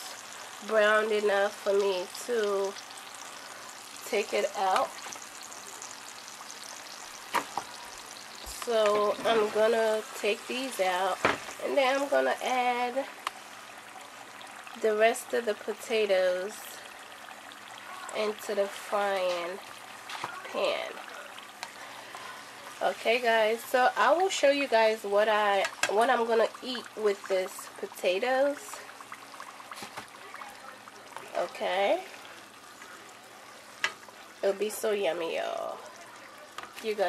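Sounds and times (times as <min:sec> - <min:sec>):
potatoes sizzling in oil: 0:00.0 - 0:37.0.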